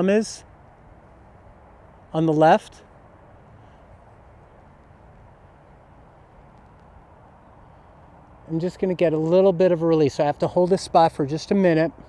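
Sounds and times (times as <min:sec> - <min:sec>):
faint low rumble and hiss: 0:00.0 - 0:12.0.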